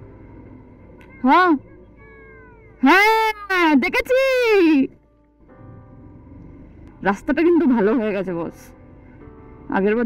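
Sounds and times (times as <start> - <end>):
meow-like cries: 1.0 - 3.6.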